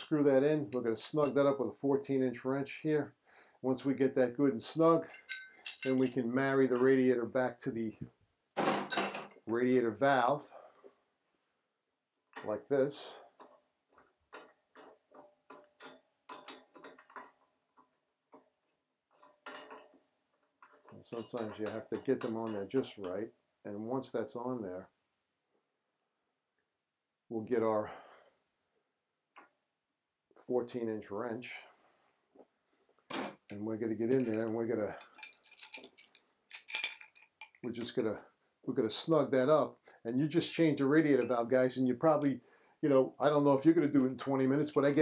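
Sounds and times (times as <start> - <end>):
metal parts clinking: 5.0 - 6.2, 33.1 - 37.9.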